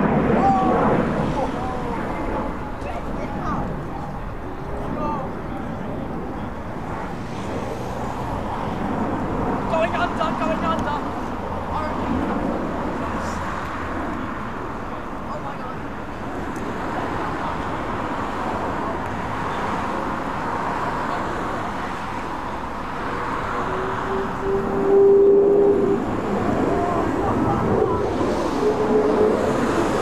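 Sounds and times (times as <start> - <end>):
distant jet engines on approach: 0.0 - 30.0.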